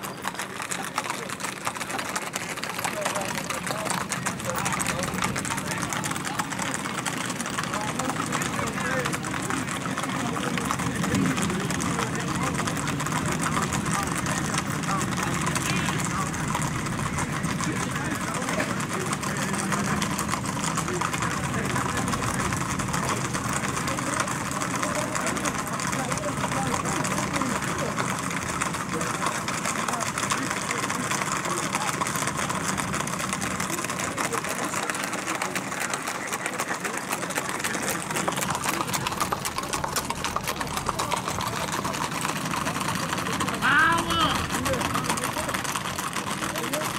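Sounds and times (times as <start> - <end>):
hooves clattering on paved road: 0.0 - 46.9.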